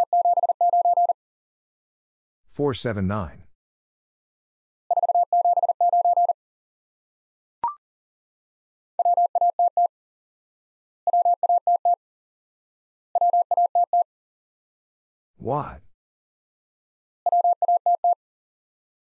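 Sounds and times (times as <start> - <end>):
morse code tone: 0.0 - 1.2, 4.9 - 6.4, 17.3 - 18.2.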